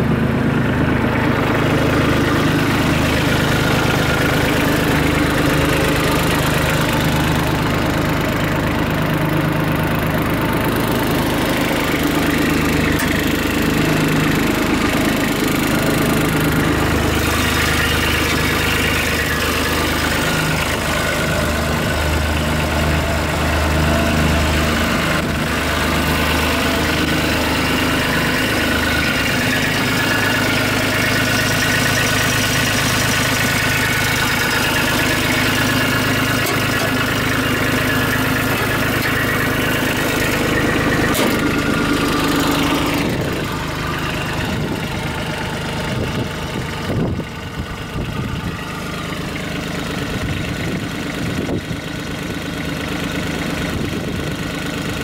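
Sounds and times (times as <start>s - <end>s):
diesel tractor engine idling: 0.0s - 55.0s.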